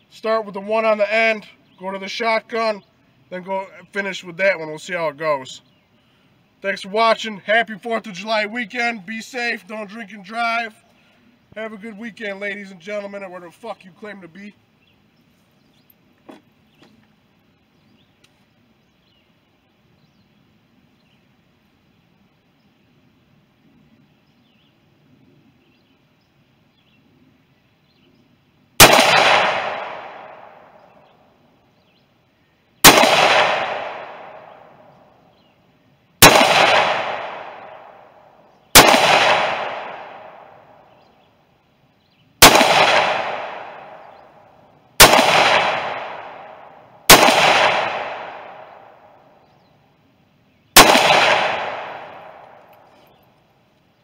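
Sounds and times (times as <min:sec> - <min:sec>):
rifle shots with echo: 0:28.8 - 0:31.1, 0:32.8 - 0:34.9, 0:36.2 - 0:40.9, 0:42.4 - 0:49.2, 0:50.8 - 0:52.9.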